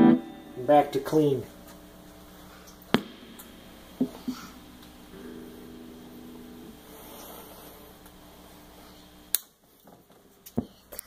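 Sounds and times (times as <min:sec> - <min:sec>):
clean electric guitar notes: 0:00.0 - 0:09.2
amp background hum: 0:00.0 - 0:11.0.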